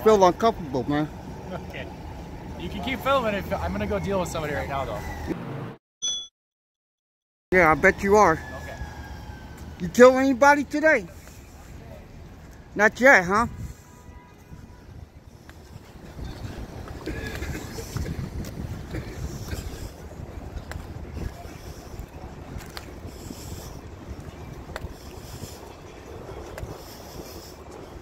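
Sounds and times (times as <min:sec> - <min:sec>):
city street noise: 0:00.0 - 0:05.8, 0:07.5 - 0:28.0
wind buffeting microphone: 0:13.4 - 0:28.0.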